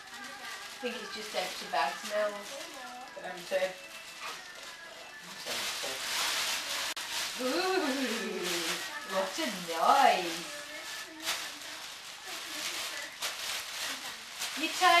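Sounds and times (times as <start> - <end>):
plastic bag crinkling: 0.0 - 15.0.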